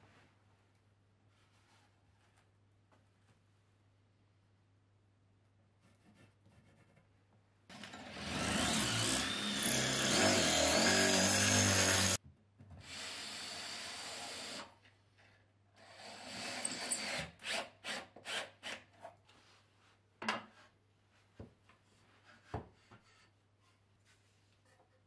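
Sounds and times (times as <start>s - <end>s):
cordless drill drilling into wood: 7.8s - 12.2s, 12.8s - 14.7s.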